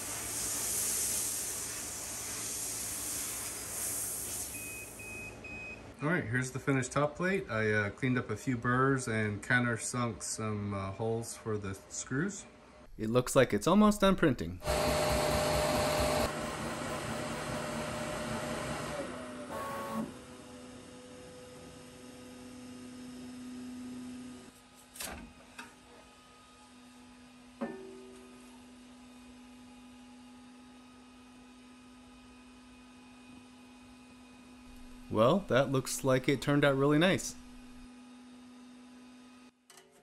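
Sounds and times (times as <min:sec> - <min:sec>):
printer fans and motors whirring: 0:14.6 - 0:24.8.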